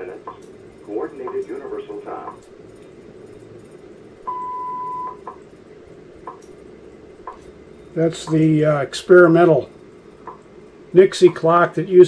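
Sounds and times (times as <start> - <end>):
faint radio static: 0.0 - 3.2
long time-signal beep: 4.3 - 5.2.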